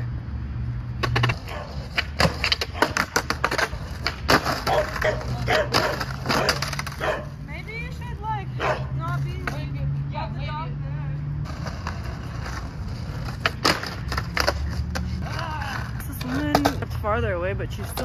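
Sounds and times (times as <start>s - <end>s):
skateboard wheels rolling on concrete: 0.0s - 18.0s
skateboard clacks: 1.0s - 7.3s, 8.6s - 9.8s, 11.4s - 18.0s
dog barking: 1.5s - 1.8s, 4.7s - 7.4s, 8.6s - 8.9s.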